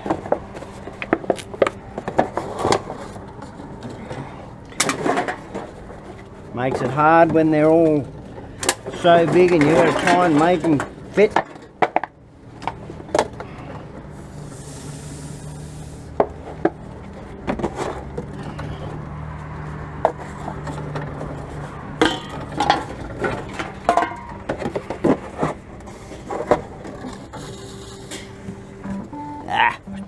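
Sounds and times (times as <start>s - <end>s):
cans and bottles clinking: 8.4s - 13.5s, 22.0s - 28.4s
low machine hum: 20.6s - 30.0s.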